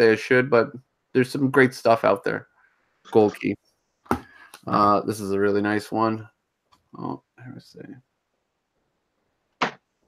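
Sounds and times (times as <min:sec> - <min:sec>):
person speaking a word: 0:03.1 - 0:03.6, 0:04.7 - 0:06.2.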